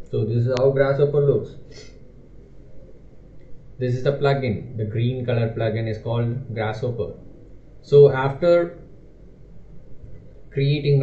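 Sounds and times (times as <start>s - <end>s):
open microphone background noise: 0.0s - 11.0s
man speaking: 0.1s - 1.7s, 3.8s - 7.2s, 7.8s - 8.8s, 10.5s - 11.0s.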